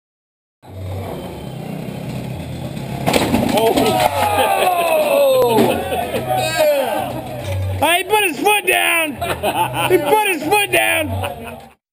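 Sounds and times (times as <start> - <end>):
scooter engine running: 0.6 - 6.4.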